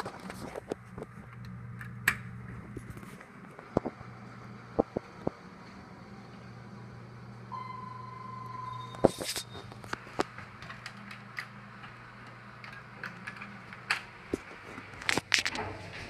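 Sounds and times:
low steady hum: 0.0 - 16.0
steady electronic beep: 7.5 - 9.8.

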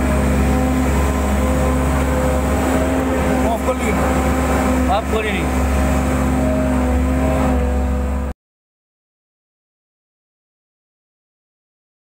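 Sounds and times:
diesel engine low hum: 0.0 - 8.4.

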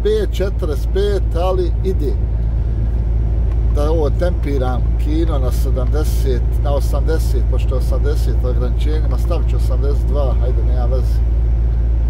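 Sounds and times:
truck engine and tyres droning: 0.0 - 12.0.

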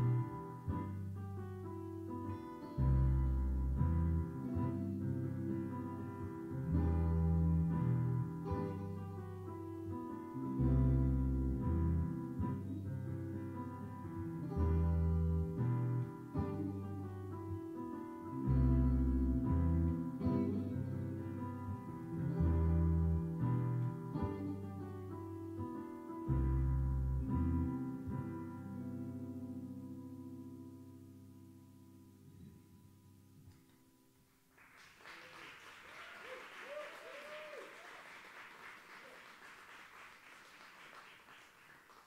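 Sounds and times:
electric bass: 0.0 - 33.4
electric keyboard piano sound: 0.0 - 33.6
electric guitar: 0.0 - 33.9.

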